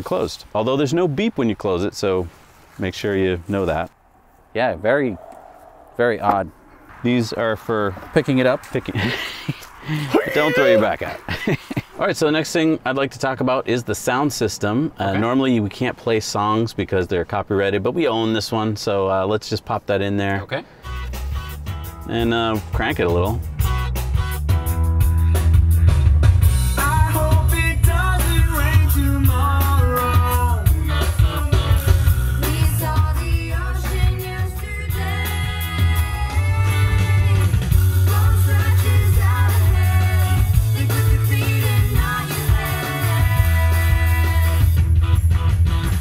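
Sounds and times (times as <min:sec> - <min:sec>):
song with singing guitar and bass: 0:24.7 - 0:46.0.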